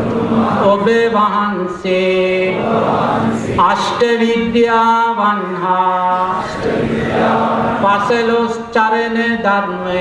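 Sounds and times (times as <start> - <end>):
voices chanting: 2.3 - 4.0, 5.9 - 8.4.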